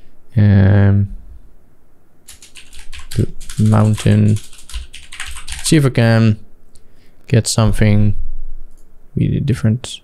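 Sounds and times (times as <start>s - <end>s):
computer keyboard typing: 2.3s - 5.9s.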